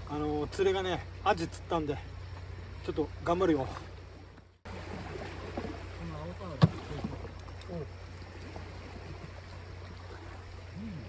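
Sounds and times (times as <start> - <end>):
low wind: 0.0 - 11.0
water noise: 0.0 - 11.0.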